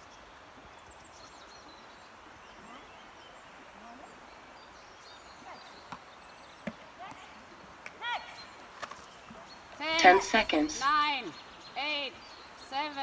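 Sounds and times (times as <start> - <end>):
person counting down: 10.0 - 10.9.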